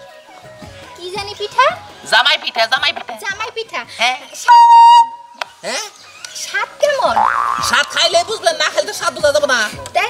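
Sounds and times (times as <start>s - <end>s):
voices: 1.2s - 9.4s
electronic tone: 7.0s - 7.9s.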